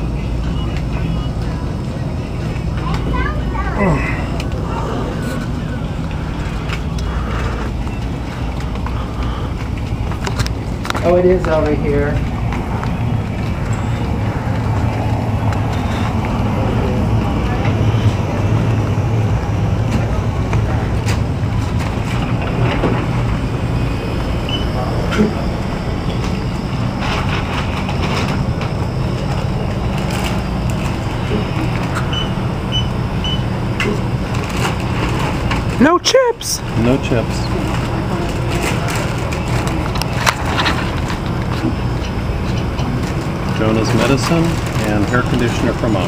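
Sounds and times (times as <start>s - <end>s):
short high beeps: 24.4s - 24.8s.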